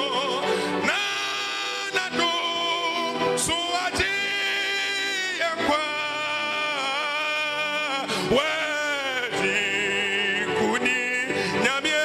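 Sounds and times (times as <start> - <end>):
electronic keyboard chords: 0.0 - 12.0
man singing a hymn: 0.0 - 12.0.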